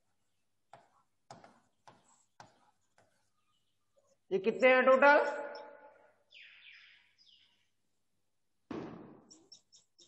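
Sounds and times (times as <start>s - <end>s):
sudden thump: 8.7s - 9.2s.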